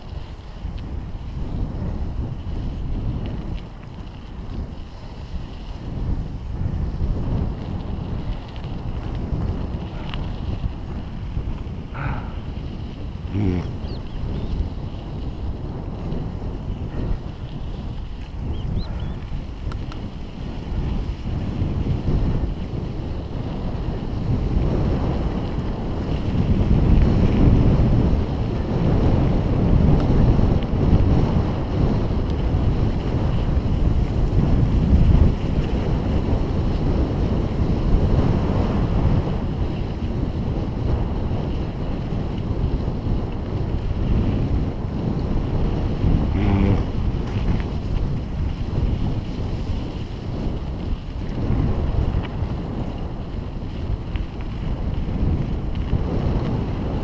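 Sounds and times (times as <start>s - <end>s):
bicycle tyres rolling on gravel: 0.0s - 57.0s
wind buffeting microphone: 0.0s - 57.0s.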